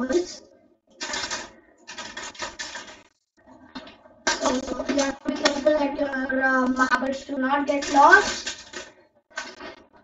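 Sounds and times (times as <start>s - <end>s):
glass marbles clattering on plastic: 7.8s - 9.6s.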